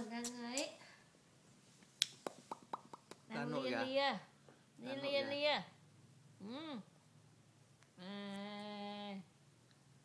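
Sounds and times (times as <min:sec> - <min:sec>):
tongue clicking pops: 0:02.0 - 0:03.2.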